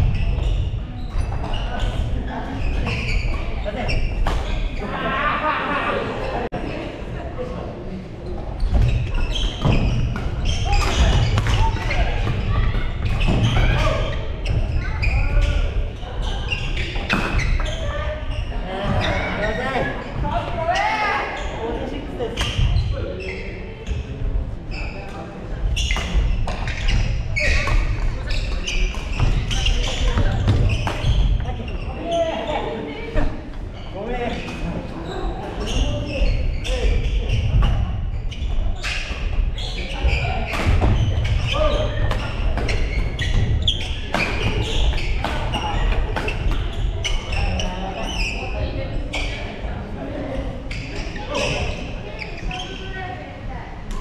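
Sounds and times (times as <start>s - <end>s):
people talking: 10.4s - 38.9s, 39.6s - 54.0s.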